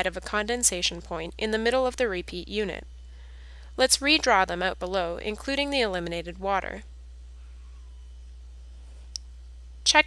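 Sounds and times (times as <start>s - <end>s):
steady low hum: 0.0s - 10.0s
person narrating: 3.8s - 6.8s.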